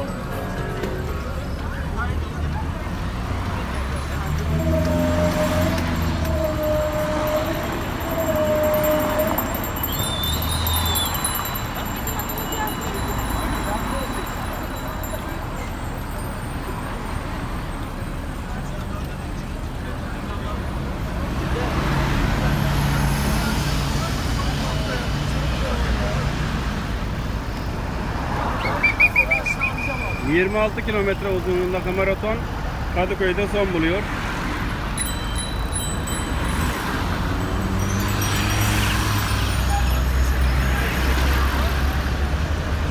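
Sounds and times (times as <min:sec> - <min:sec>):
traffic rumble: 0:00.0 - 0:42.9
rapid high trilling ring: 0:04.5 - 0:15.4, 0:35.0 - 0:40.4.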